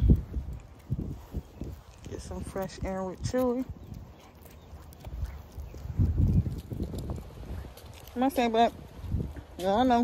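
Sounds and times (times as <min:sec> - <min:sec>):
footsteps on paved street: 0:00.0 - 0:10.0.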